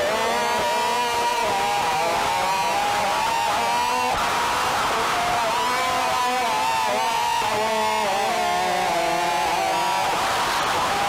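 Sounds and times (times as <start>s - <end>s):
loud distorted drone: 0.0s - 11.0s.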